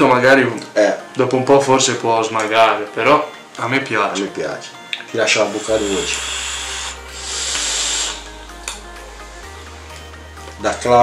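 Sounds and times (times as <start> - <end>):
faint background music: 0.0 - 11.0
breathy vaping hiss: 5.4 - 10.2.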